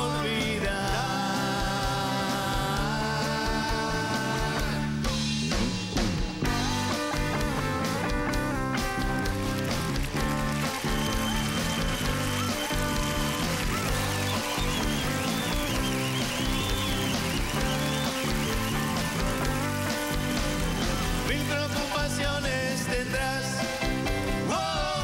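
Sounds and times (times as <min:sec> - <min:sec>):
live band music: 0:00.0 - 0:25.0
electric guitar lead line: 0:00.8 - 0:24.6.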